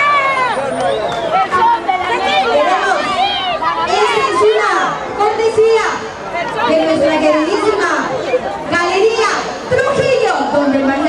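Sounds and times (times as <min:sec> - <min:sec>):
crowd chatter in a large hall: 0:00.0 - 0:11.0
people talking: 0:00.4 - 0:11.0.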